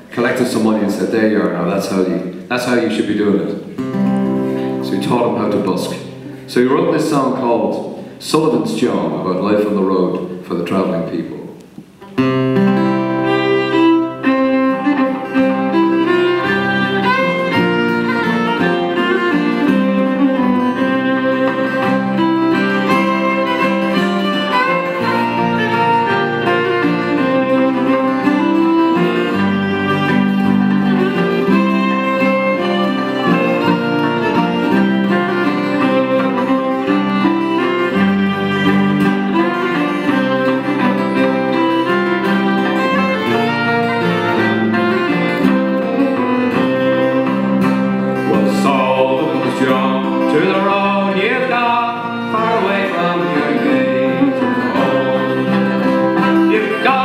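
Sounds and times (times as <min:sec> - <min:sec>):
fiddle playing melody: 0:00.0 - 0:57.0
strummed acoustic guitar: 0:00.0 - 0:57.0.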